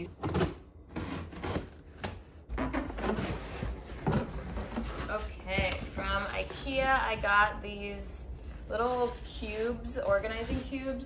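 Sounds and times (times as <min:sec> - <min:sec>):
cardboard box scraping: 0:02.5 - 0:07.4, 0:08.8 - 0:11.0.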